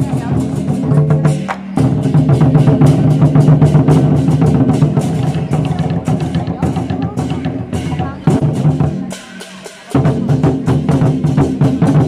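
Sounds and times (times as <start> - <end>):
large war drums beaten fast: 0.0 - 12.0.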